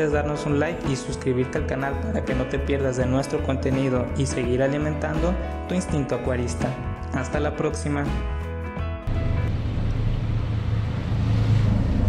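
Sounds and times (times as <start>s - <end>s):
aquarium filter pump humming: 9.1s - 12.0s
water flow rushing: 9.1s - 12.0s.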